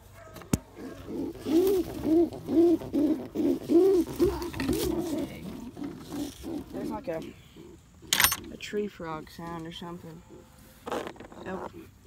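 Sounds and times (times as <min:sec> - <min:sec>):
pigeon cooing: 0:00.2 - 0:09.2, 0:10.1 - 0:12.0.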